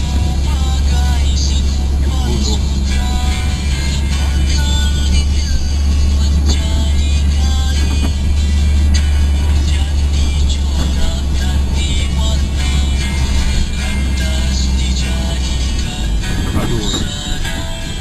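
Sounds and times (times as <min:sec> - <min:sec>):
car driving drone: 0:00.0 - 0:18.0
music playing: 0:00.0 - 0:18.0.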